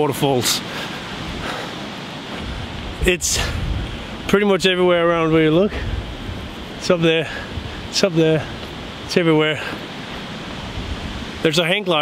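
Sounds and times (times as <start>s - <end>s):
wind on microphone: 2.3s - 11.5s.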